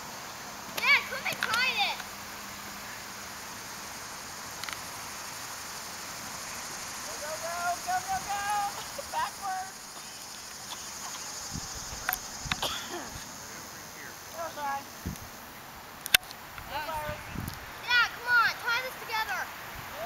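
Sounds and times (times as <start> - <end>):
steady high hiss: 0.0 - 20.0
girl calling in rising tones: 7.1 - 9.8
girls shrieking: 7.1 - 10.1.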